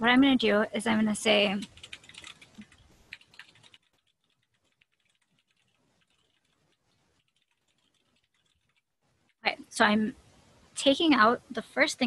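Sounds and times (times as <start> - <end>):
faint keyboard typing: 1.2 - 8.9.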